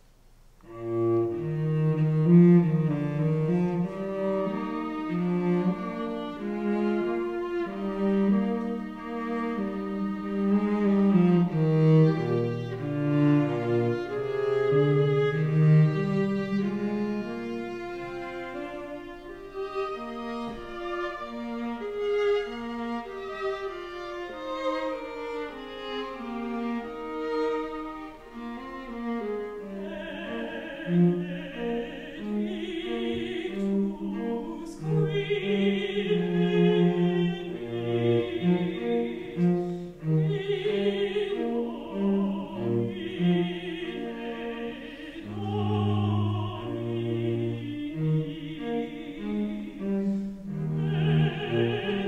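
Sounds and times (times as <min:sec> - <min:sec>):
string ensemble bowed notes: 0:00.6 - 0:52.0.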